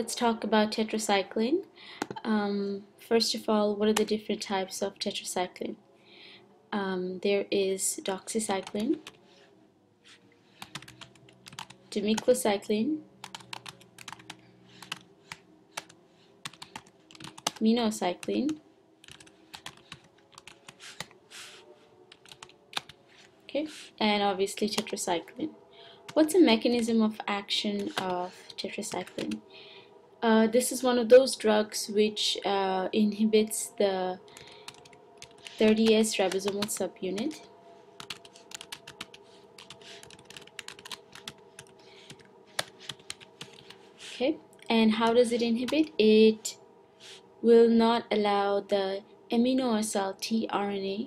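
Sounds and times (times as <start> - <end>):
computer keyboard typing: 8.1 - 9.2, 10.6 - 12.4, 13.2 - 21.2, 22.1 - 23.3, 24.6 - 25.1, 27.8 - 29.4, 34.4 - 37.4, 38.0 - 43.8.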